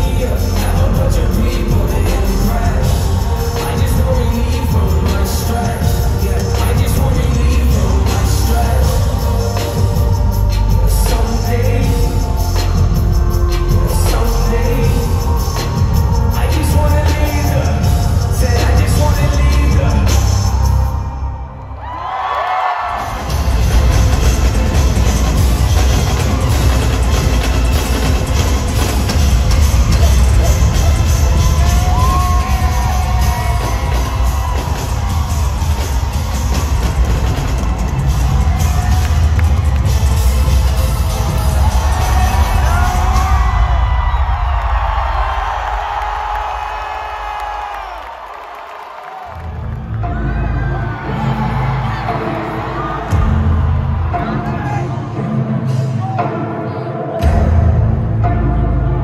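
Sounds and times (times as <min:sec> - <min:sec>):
crowd cheering and whooping: 0:00.0 - 0:57.6
loud live concert music: 0:00.0 - 0:59.0.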